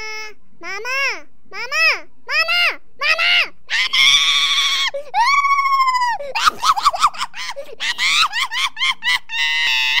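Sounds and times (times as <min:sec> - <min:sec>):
shrill voice screaming: 0:02.3 - 0:10.0.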